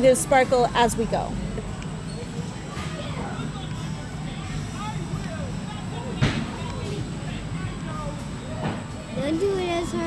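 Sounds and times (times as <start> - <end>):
faint background voices: 0.0 - 10.0.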